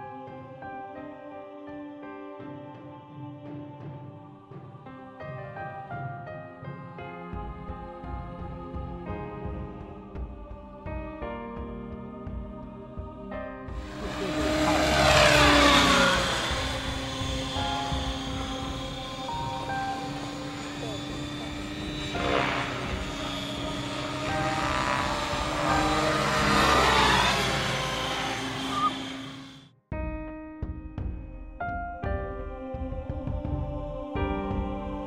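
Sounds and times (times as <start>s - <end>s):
model helicopter rotor whine: 13.8s - 29.7s.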